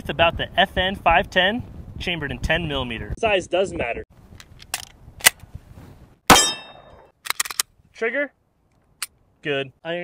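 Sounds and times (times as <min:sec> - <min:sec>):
pistol shot with metallic ringing: 0:06.3 - 0:07.1.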